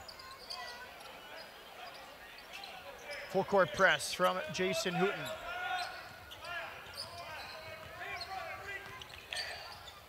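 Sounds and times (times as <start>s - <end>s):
sneakers squeaking: 0.0s - 10.0s.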